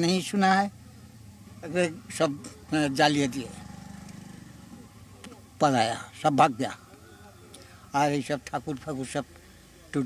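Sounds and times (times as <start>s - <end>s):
pulsing engine hum: 0.0s - 10.0s.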